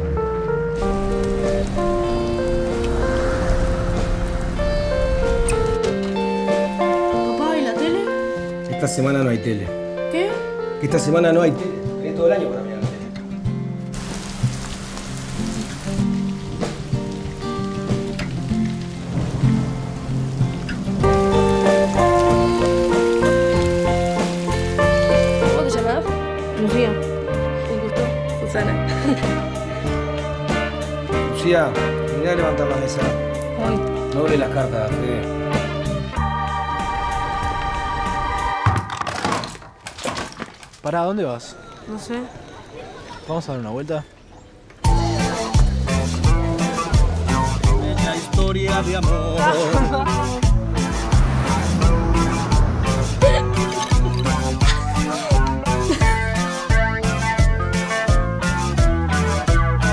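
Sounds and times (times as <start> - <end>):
music of sustained notes: 0.0 - 39.0, 44.9 - 59.9
rain falling on water: 0.8 - 7.8, 13.8 - 26.0
object crashing and breaking: 38.6 - 40.8.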